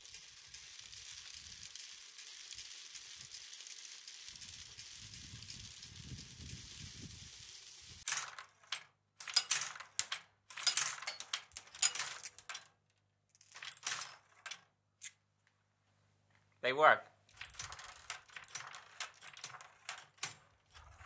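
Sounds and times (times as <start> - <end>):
metallic rattling and clinking: 0.0 - 6.5, 8.0 - 15.2, 17.3 - 21.0.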